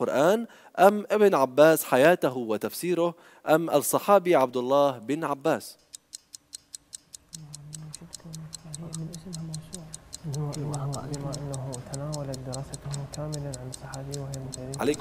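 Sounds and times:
clock ticking rapidly: 0:05.6 - 0:15.0
men's voices conferring quietly: 0:10.2 - 0:15.0.

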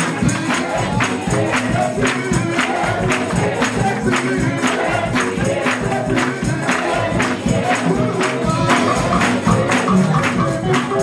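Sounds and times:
choir singing over a beat: 0:00.0 - 0:11.0.

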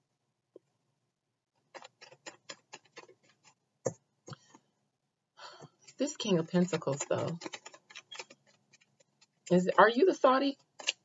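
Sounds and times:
cards being shuffled: 0:01.7 - 0:03.6, 0:05.9 - 0:09.5, 0:10.6 - 0:11.0.

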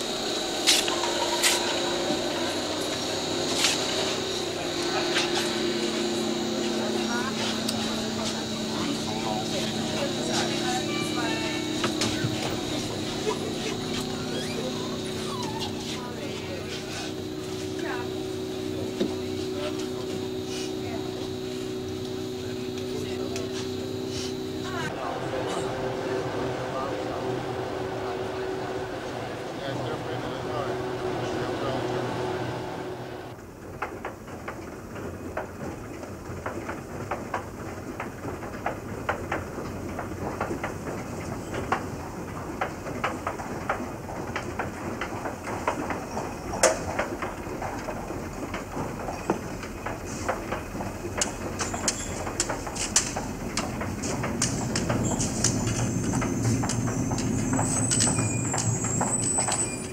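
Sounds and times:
passengers' voices: 0:00.0 - 0:33.4
metro train running: 0:00.0 - 0:59.9.

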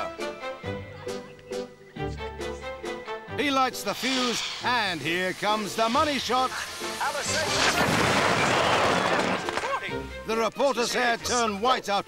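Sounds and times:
fireworks bangs and crackles: 0:06.4 - 0:09.7.

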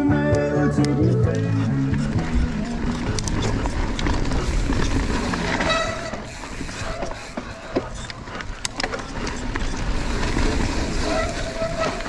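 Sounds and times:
mountain bike tyre noise: 0:01.4 - 0:12.0
bike clattering and rattling: 0:01.8 - 0:12.0.

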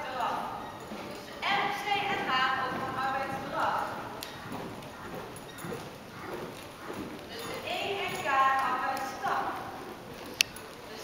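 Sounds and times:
horse trotting on sand: 0:00.0 - 0:11.0
people talking: 0:01.2 - 0:03.9, 0:07.3 - 0:09.7.

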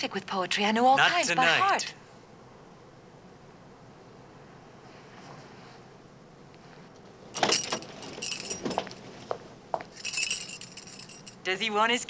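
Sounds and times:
car keys jangling: 0:07.4 - 0:09.2, 0:10.0 - 0:11.4.

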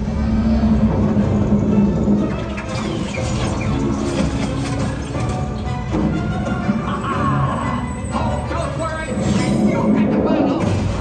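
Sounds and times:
loud soundtrack music: 0:00.0 - 0:11.0.

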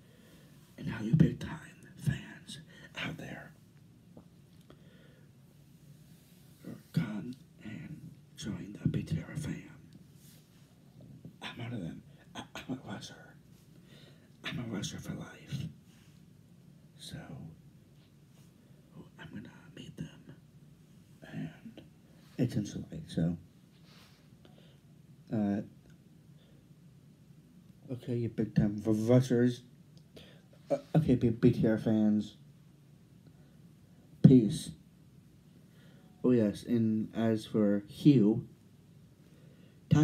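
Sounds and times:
low steady hum: 0:00.0 - 0:40.0
man whispering into microphone: 0:00.8 - 0:03.6, 0:06.6 - 0:10.4, 0:11.1 - 0:13.5, 0:14.4 - 0:15.8, 0:17.0 - 0:17.6, 0:18.9 - 0:20.4, 0:21.2 - 0:23.4, 0:30.6 - 0:32.4.

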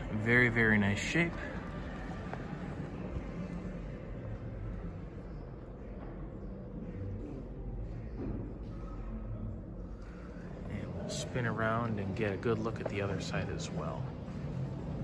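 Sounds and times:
faint background murmur: 0:00.0 - 0:15.0.

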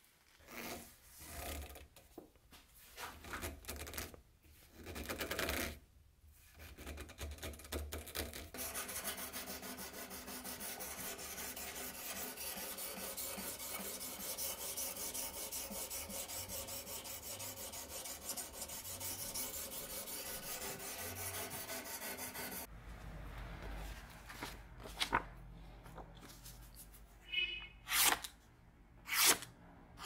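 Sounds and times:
stone rasping on knife edge: 0:09.0 - 0:22.7.

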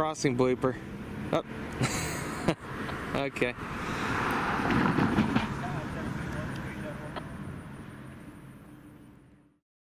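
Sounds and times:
car driving past: 0:00.3 - 0:09.5.

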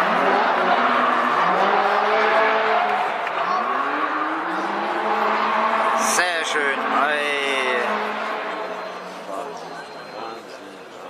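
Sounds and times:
background crowd and track noise: 0:00.0 - 0:11.0.

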